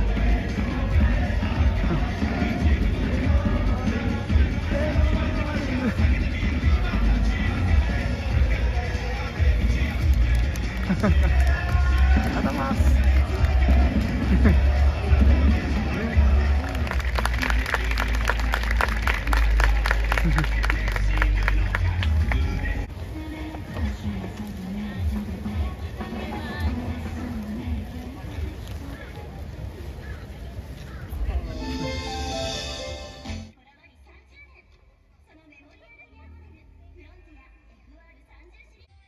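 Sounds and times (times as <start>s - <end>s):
crowd singing a chant: 0.0s - 17.2s
drum beating steadily: 0.0s - 22.9s.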